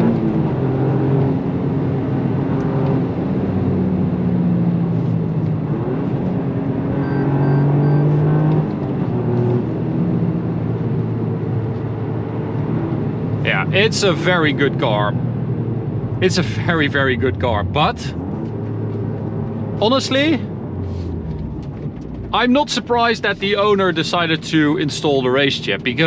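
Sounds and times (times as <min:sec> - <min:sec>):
car engine from inside cabin: 0:00.0 - 0:26.0
tyre and road noise: 0:00.0 - 0:26.0.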